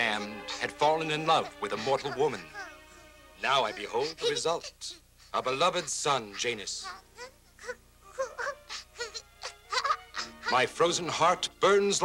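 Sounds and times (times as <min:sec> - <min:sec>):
baby crying: 0:00.0 - 0:10.9.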